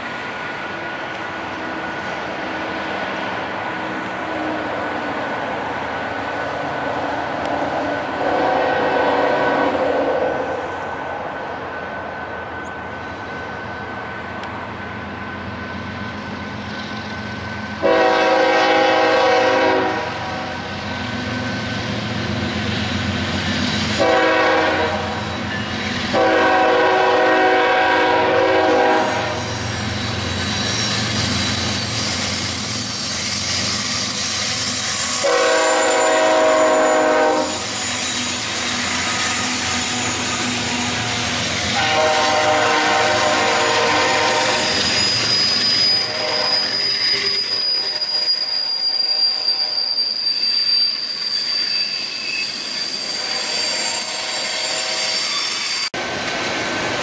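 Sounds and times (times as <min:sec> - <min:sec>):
train rumble and clickety-clack: 0:00.0 - 0:57.0
train horn blasts: 0:08.2 - 0:10.2, 0:17.8 - 0:20.7, 0:23.9 - 0:25.3, 0:26.1 - 0:29.6, 0:35.1 - 0:37.8, 0:41.7 - 0:45.0, 0:45.8 - 0:49.9
high wheel squeal: 0:20.5 - 0:24.1, 0:25.1 - 0:26.2, 0:29.0 - 0:56.7.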